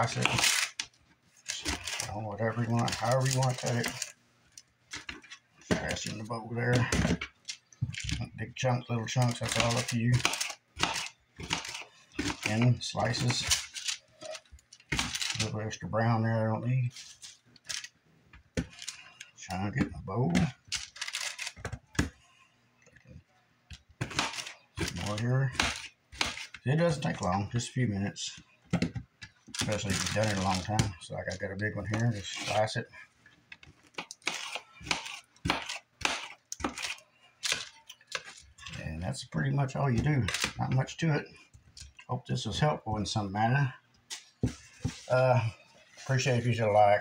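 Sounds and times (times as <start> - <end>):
knife slicing pineapple: 34.2 - 37.6.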